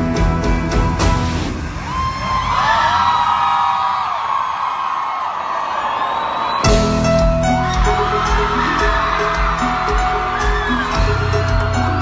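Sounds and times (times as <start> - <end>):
band playing with drums and bass: 0.0 - 2.0, 6.6 - 12.0
concert crowd screaming: 1.3 - 12.0.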